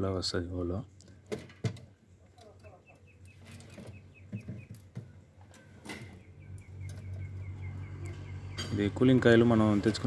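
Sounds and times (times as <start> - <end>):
small bird chirping: 2.6 - 5.0, 6.0 - 8.9.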